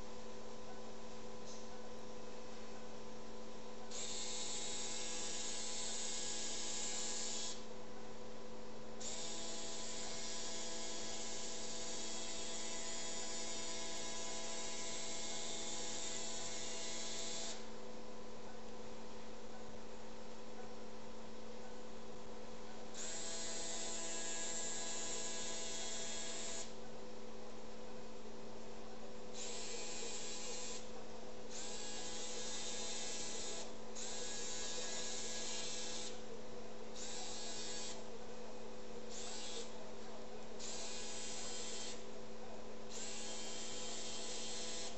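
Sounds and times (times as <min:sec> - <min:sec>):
motorized shaver bursts: 0:03.9 - 0:07.7, 0:09.0 - 0:17.7, 0:22.9 - 0:26.8, 0:29.4 - 0:30.9, 0:31.5 - 0:36.2, 0:37.0 - 0:38.0, 0:39.1 - 0:39.8, 0:40.6 - 0:42.0, 0:42.9 - 0:44.9.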